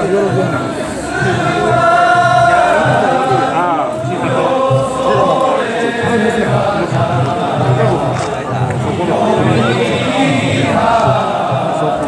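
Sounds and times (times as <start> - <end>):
men chanting a festival song: 0.0 - 12.0.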